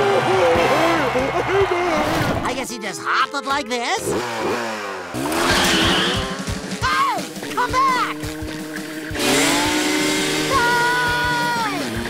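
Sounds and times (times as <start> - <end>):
cartoon engine revving: 4.0 - 12.0.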